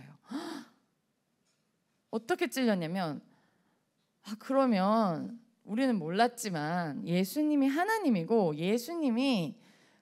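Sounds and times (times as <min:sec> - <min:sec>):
woman gasping: 0:00.2 - 0:00.8.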